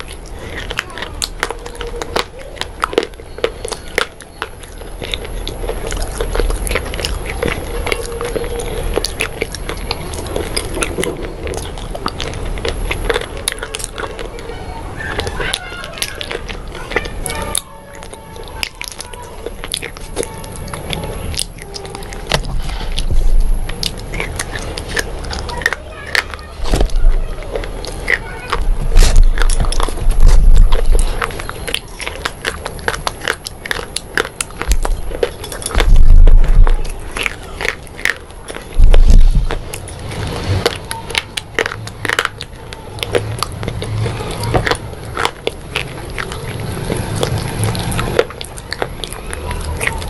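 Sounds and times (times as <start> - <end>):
crisp crunches: 0.0 - 50.0
low steady hum: 0.0 - 50.0
person chewing food: 0.0 - 50.0.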